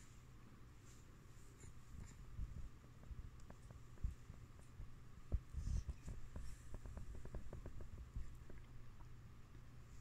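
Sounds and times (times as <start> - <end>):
faint rustles: 0.0 - 9.1
low hum: 0.0 - 10.0.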